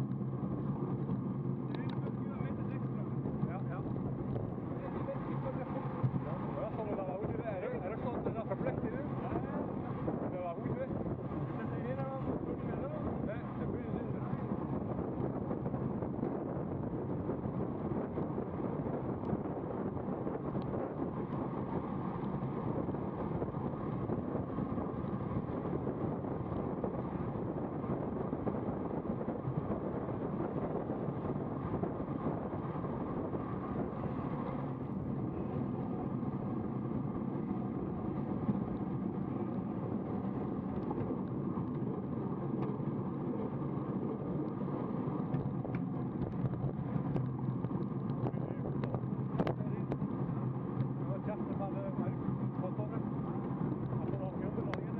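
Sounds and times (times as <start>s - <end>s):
road noise: 0.0s - 54.9s
wind rushing on microphone: 0.0s - 54.9s.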